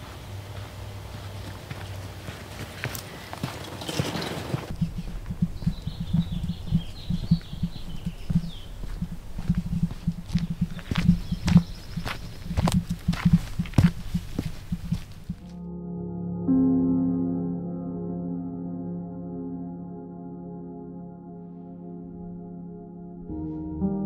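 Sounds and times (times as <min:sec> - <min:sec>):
footsteps on dirt trail: 0:00.0 - 0:15.6.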